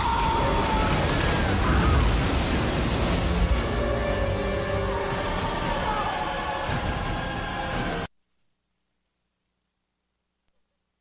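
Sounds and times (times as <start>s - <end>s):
churning splashing water: 0.0s - 8.1s
orchestral music: 0.0s - 8.1s.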